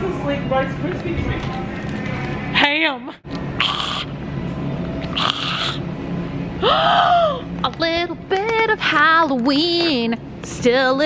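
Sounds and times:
store hum: 0.0s - 11.0s.

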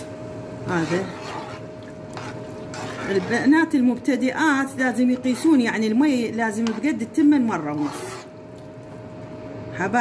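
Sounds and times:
faint hum: 0.0s - 10.0s
spoon stirring liquid in pot: 0.1s - 9.3s.

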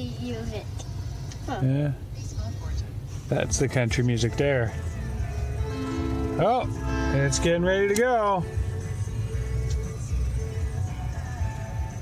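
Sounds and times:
low steady cab rumble: 0.0s - 12.0s.

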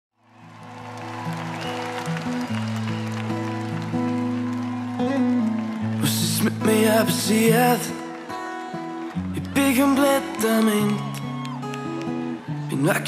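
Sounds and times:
audience applauding and cheering: 0.2s - 13.0s.

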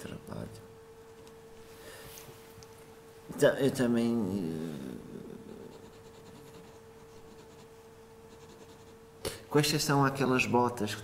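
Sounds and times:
faint hum: 0.0s - 11.0s.

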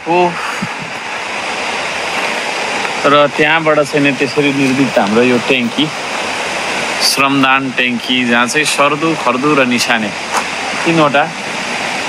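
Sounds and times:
running water: 0.0s - 12.0s.

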